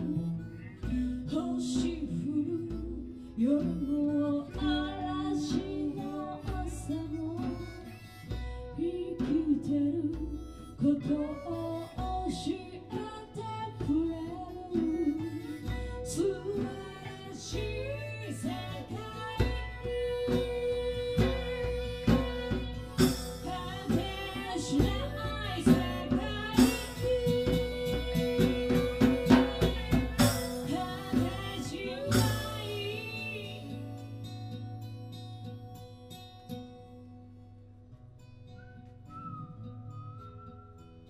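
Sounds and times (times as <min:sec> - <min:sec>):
woman singing: 0:00.0 - 0:34.8
electric guitar: 0:00.0 - 0:37.6
acoustic guitars strumming: 0:00.0 - 0:41.0
percussion beat: 0:14.7 - 0:33.6.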